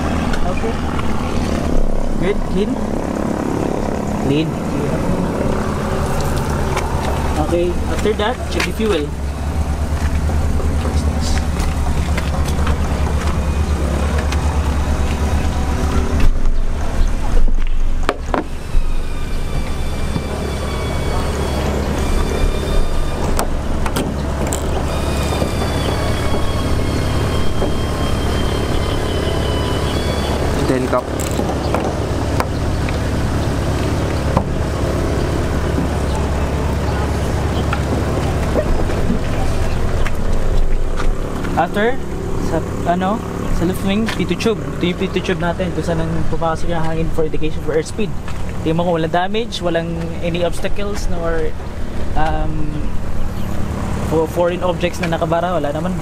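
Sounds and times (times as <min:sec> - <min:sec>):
low engine drone: 0:00.0 - 0:56.0.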